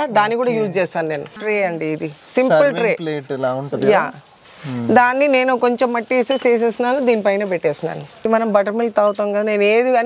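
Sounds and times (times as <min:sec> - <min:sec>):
woman speaking: 0:00.0 - 0:03.0, 0:03.8 - 0:10.0.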